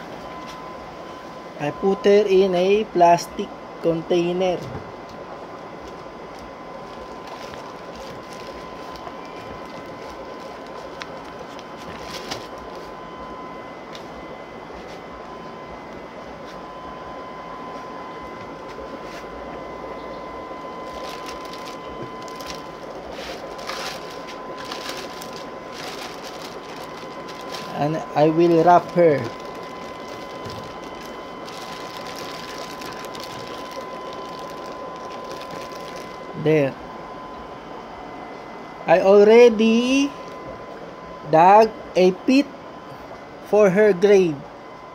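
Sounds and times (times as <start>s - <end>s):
steady machine hum with whine: 0.0s - 44.9s
plastic bag crinkling: 5.8s - 13.0s, 20.8s - 36.4s.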